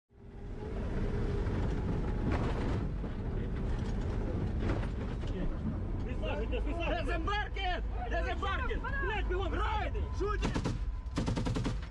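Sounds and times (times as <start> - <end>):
vehicle driving rumble: 0.1 - 10.2.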